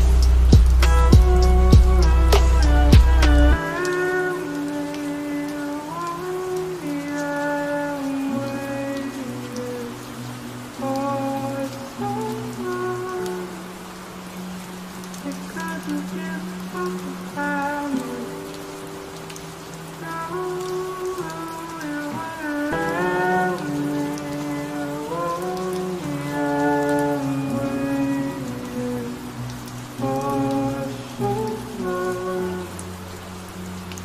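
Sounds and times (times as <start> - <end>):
rain on a hard surface: 0.0 - 34.0
soft slow melody: 0.0 - 34.0.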